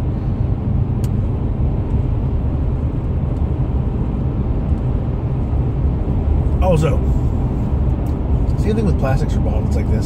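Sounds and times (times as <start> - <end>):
car interior road noise: 0.0 - 10.0.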